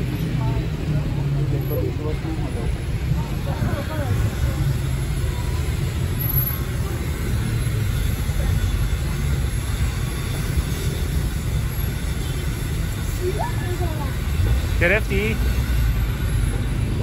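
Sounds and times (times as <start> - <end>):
street traffic rumble: 0.0 - 17.0.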